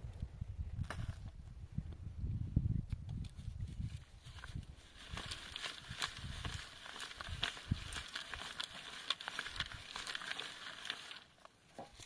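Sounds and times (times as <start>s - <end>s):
soil rustling in sieve: 3.7s - 12.0s.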